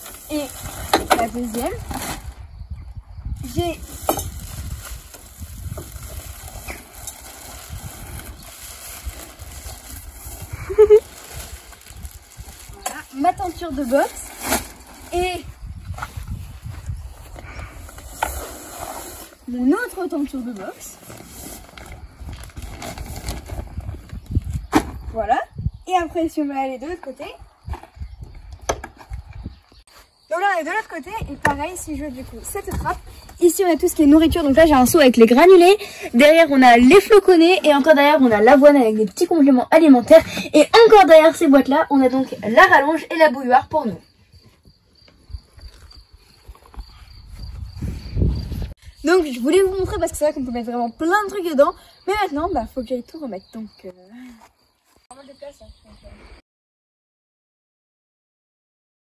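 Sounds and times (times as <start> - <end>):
plastic curtain rustling and scraping: 0.0 - 2.4, 3.4 - 24.5
insects trilling: 0.0 - 56.2.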